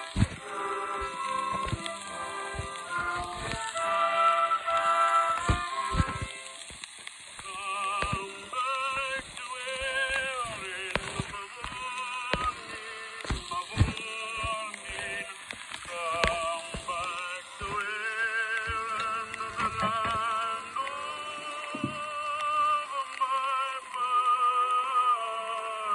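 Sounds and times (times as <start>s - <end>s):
instrumental accompaniment: 0.0s - 7.0s
record surface crackle and hiss: 0.0s - 25.9s.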